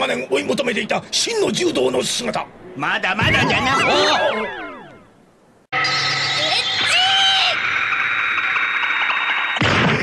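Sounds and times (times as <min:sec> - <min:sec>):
high-pitched shout: 0:06.4 - 0:07.6.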